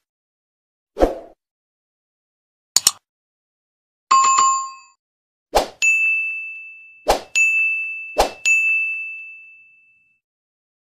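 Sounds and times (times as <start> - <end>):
brief swish: 1.0 - 1.4.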